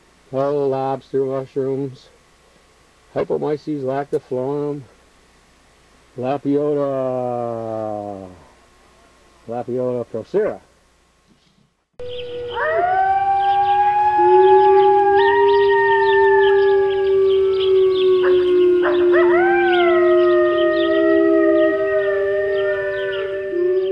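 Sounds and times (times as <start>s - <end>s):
dogs howling in chorus: 12.0s - 23.9s.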